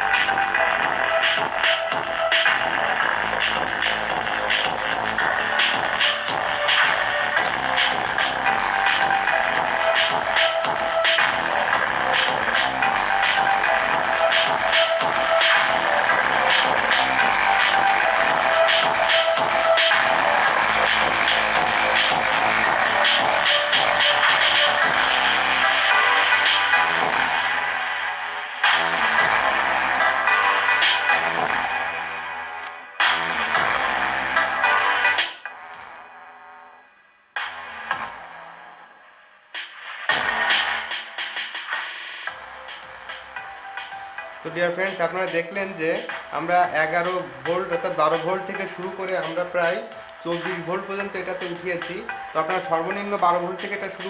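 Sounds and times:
electronic dance music: 0.0s - 36.6s, 37.4s - 54.0s.

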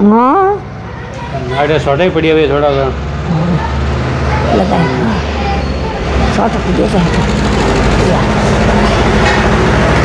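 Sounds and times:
people talking: 0.0s - 9.2s
vehicle engine rumble: 0.0s - 10.0s.

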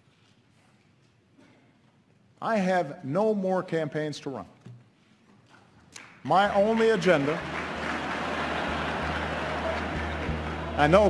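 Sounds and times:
audience applauding: 6.0s - 11.0s.

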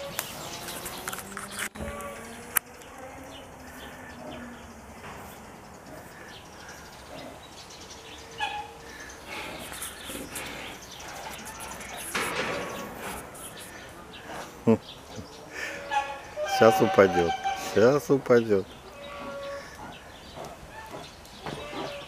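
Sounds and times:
small birds chirping: 0.0s - 22.0s.

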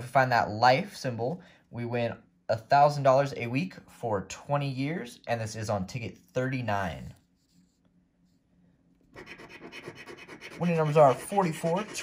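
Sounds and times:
scratch card being scraped: 9.1s - 12.0s.

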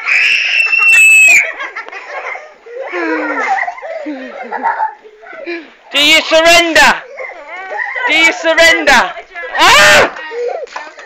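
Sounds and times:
child screaming playfully: 0.0s - 1.6s.

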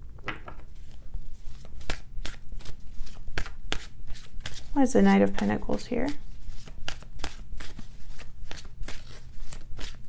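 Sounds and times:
cards being shuffled: 0.3s - 4.7s, 6.2s - 10.0s.

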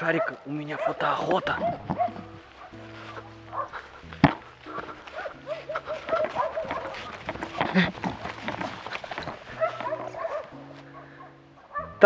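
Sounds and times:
background music of held notes: 0.0s - 12.0s
dogs barking: 0.0s - 12.0s.

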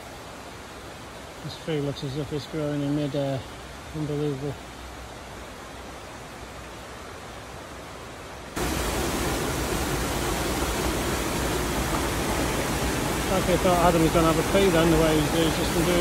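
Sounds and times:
rushing river and waterfalls: 0.0s - 16.0s.

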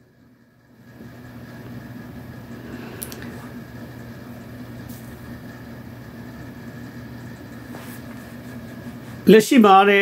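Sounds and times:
low hum: 0.0s - 9.3s.

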